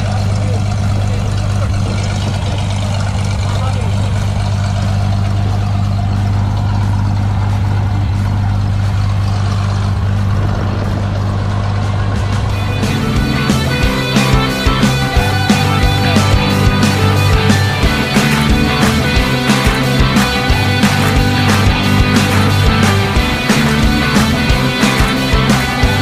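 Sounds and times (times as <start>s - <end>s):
propeller plane engine idling: 0.0s - 26.0s
propeller wash rushing: 0.0s - 26.0s.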